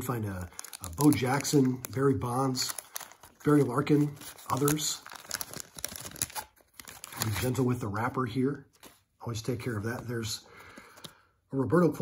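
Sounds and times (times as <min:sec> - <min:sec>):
wax paper wrapper crinkling: 0:00.1 - 0:07.7.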